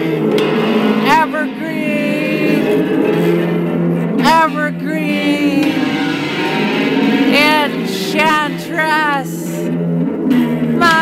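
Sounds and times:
wordless chanting voice: 1.1s - 2.8s, 4.2s - 5.9s, 7.3s - 9.7s.

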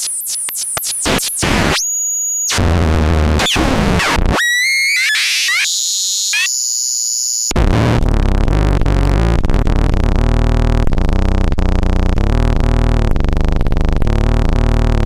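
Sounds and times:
glitchy synthesizer noise: 0.0s - 15.0s
dense buzzing noise: 7.1s - 15.0s
low synthesizer drone: 7.6s - 15.0s.

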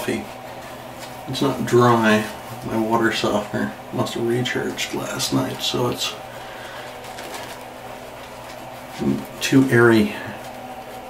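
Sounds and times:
shaving brush swishing: 4.0s - 11.0s.

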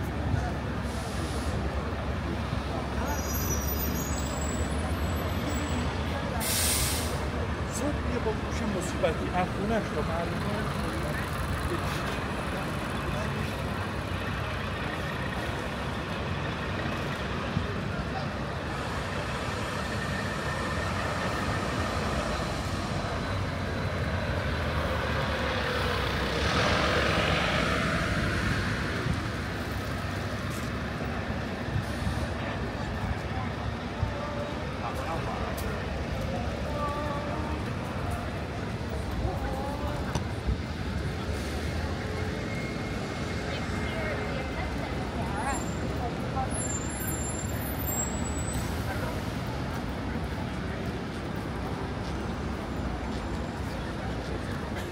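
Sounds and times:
traffic passing: 0.0s - 54.9s
air brake hiss: 0.8s - 1.6s, 6.4s - 7.3s.

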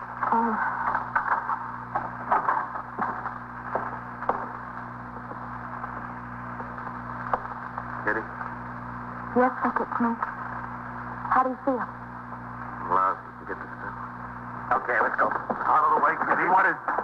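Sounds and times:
mains hum and hiss: 0.0s - 17.0s.

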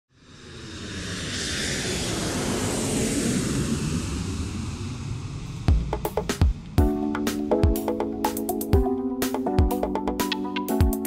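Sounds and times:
jet engine rushing rumble: 0.2s - 8.6s.

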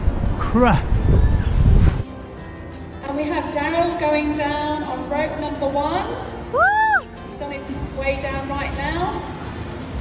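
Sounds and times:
wind buffeting microphone: 0.0s - 2.0s.

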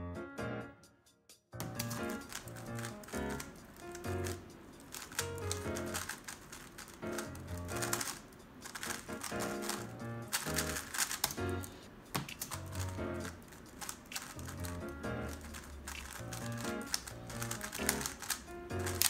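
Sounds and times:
puzzle cube clicking and clacking: 1.6s - 19.0s.

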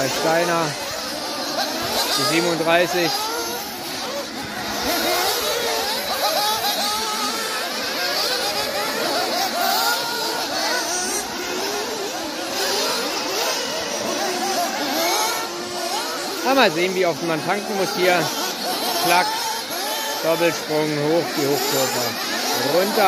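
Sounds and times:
model buggy engines revving: 0.0s - 23.0s.

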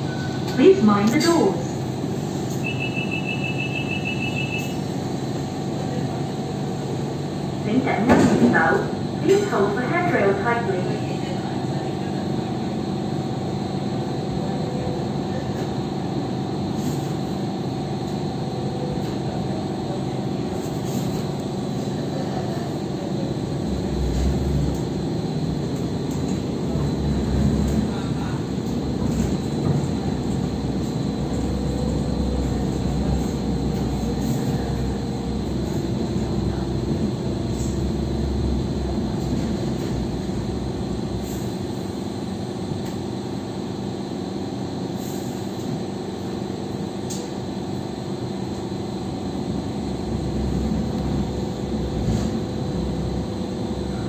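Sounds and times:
rumble of wheels on track: 0.0s - 54.0s.

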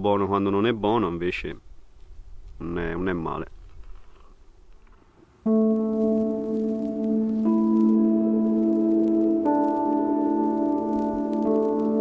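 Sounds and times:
background music chord: 5.5s - 12.0s.

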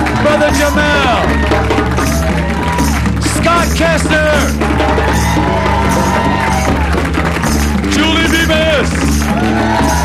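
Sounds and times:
congas: 0.0s - 10.0s
live band playing: 0.0s - 10.0s.

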